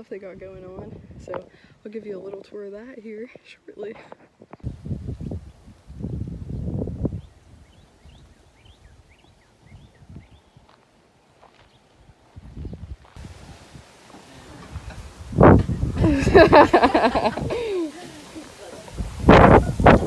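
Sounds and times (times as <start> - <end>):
wind gusts on microphone: 0.0 - 1.9, 4.4 - 10.8, 11.9 - 20.0.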